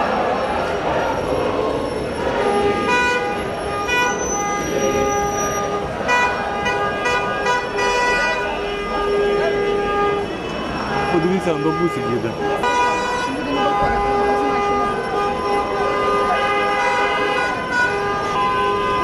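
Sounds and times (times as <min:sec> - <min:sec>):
crowd voices: 0:00.0 - 0:19.0
car horns honking: 0:00.2 - 0:19.0.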